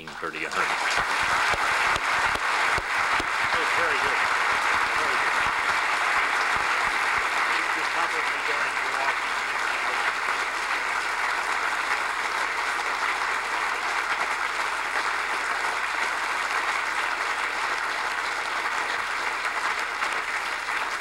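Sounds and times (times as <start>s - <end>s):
crowd applauding: 0.0s - 21.0s.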